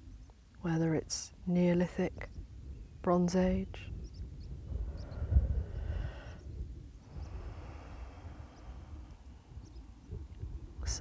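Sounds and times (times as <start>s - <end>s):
wind buffeting microphone: 1.0s - 11.0s.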